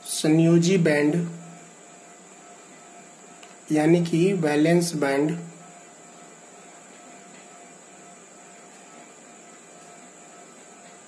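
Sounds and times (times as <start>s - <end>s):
high whine: 0.0s - 11.0s
hiss and electrical hum: 0.0s - 11.0s.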